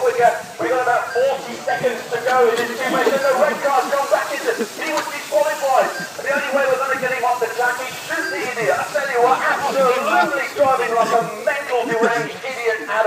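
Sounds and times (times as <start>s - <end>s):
man talking: 0.0s - 13.0s
steady hiss: 0.0s - 13.0s.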